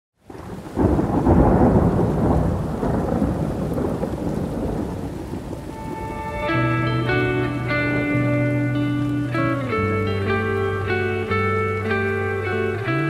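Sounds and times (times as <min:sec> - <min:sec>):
rolling thunder rumble: 0:00.2 - 0:13.0
steady rain: 0:00.2 - 0:13.0
music note: 0:05.7 - 0:12.9.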